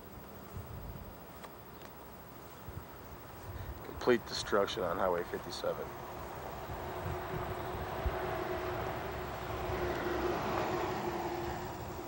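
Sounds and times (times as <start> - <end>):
distant engine hum: 0.0 - 12.0.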